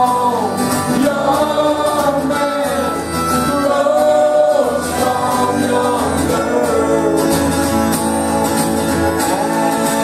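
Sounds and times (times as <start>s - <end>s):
punk rock band playing live: 0.0s - 10.0s
voices singing together: 0.0s - 10.0s.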